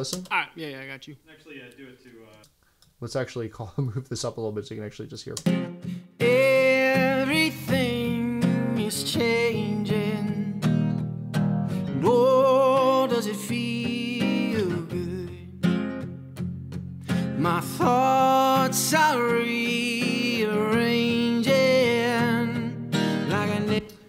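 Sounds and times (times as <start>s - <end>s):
strummed acoustic guitar: 5.4s - 24.0s
man singing: 6.1s - 10.8s, 11.9s - 15.7s, 17.2s - 24.0s.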